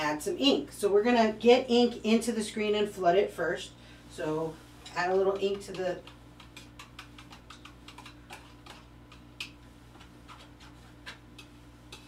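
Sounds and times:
spatula clicks and taps: 5.3 - 12.0.

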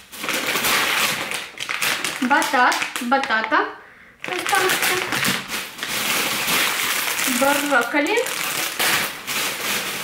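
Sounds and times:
plastic bags crinkling: 0.0 - 3.6, 4.2 - 10.0.

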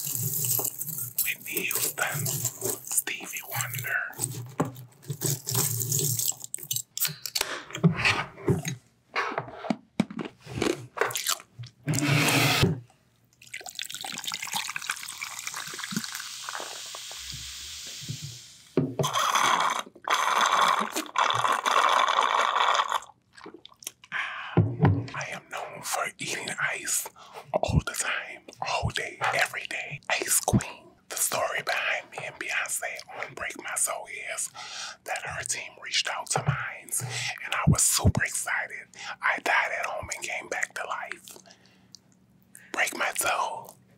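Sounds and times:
cola fizzing over ice: 13.4 - 17.3
sipping through a straw: 19.0 - 23.6.

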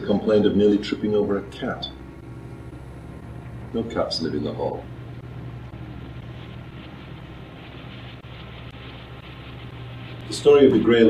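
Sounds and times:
faint hiss: 0.0 - 11.0
steady low hum: 0.0 - 11.0.

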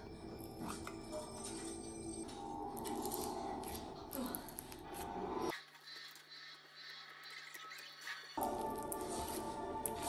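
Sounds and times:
background music: 0.0 - 5.5, 8.4 - 10.0.

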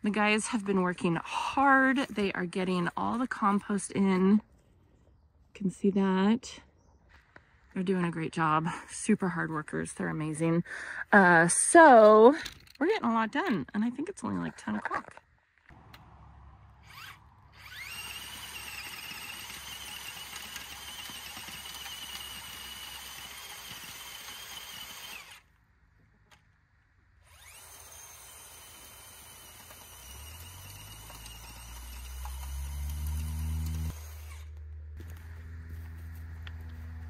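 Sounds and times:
cordless drill motor whine: 16.8 - 25.5, 27.2 - 37.0
deeper drone rising in pitch: 31.6 - 37.0.

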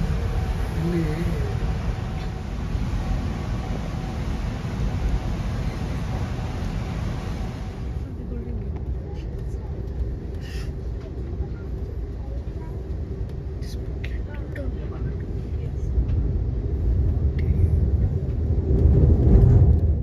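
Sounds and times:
train rumbling over bridge: 0.0 - 20.0.

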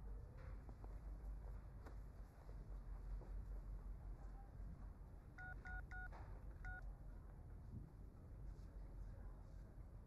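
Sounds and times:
phone keypad beeping: 5.4 - 6.8.

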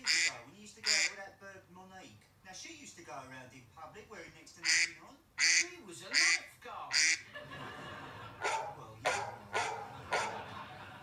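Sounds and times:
duck quack ringtone: 0.0 - 1.2, 4.6 - 7.3.

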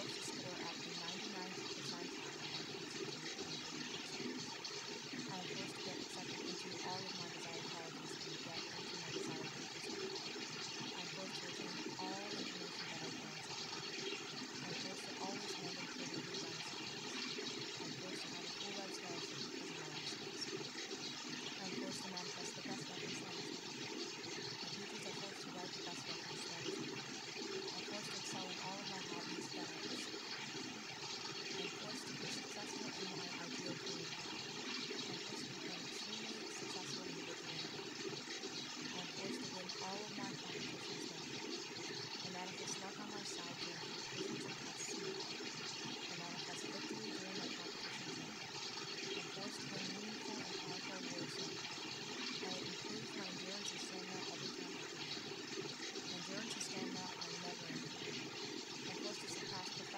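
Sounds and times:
faint murmuring voices: 0.0 - 59.9
rushing water: 0.0 - 59.9.

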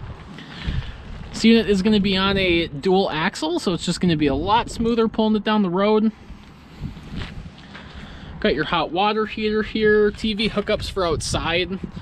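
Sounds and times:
faint footsteps on asphalt: 0.0 - 2.4, 6.2 - 11.1
wind on microphone: 0.0 - 5.4, 6.1 - 12.0.

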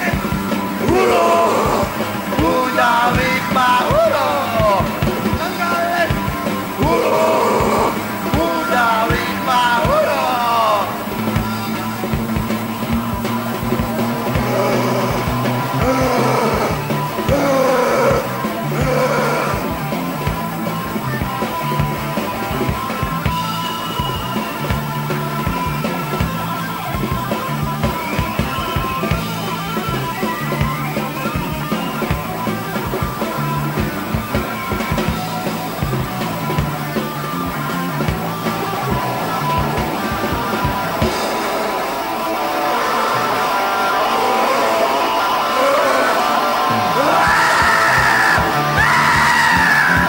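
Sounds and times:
shouted vocal: 0.0 - 11.1, 14.2 - 19.9, 38.8 - 50.0
bass line: 0.0 - 50.0
electric guitar: 0.0 - 50.0
steady drumbeat: 0.0 - 50.0.

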